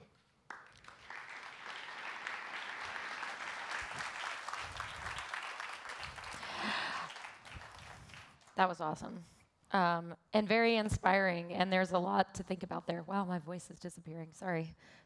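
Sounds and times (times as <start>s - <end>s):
audience applauding: 0.5s - 8.6s.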